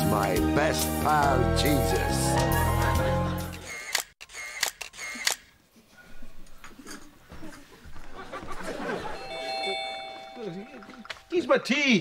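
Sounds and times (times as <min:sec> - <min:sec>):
camera shutter clicks: 0:03.5 - 0:05.5.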